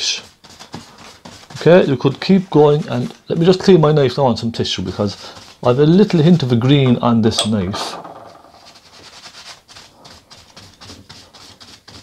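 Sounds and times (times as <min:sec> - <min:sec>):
knife wiped on tissue: 0:04.8 - 0:06.2, 0:08.7 - 0:12.0.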